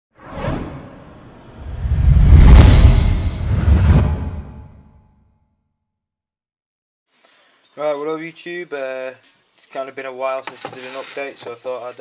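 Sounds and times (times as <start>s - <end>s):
whoosh sound effect: 0.2s - 4.9s
deep rumble: 1.2s - 4.9s.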